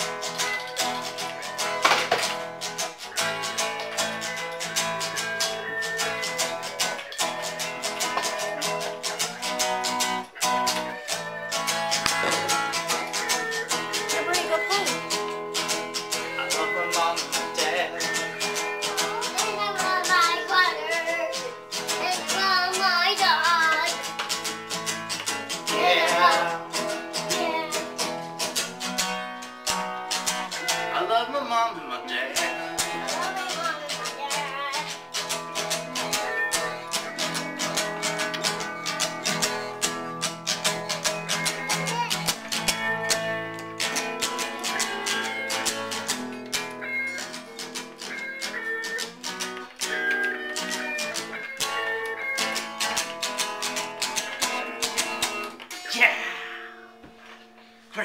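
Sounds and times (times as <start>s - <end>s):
young child singing: 0.0s - 2.2s, 16.1s - 24.1s, 25.7s - 28.2s, 32.4s - 35.1s, 35.7s - 39.7s, 41.2s - 42.4s, 44.0s - 46.1s
acoustic guitar strumming: 0.0s - 58.0s.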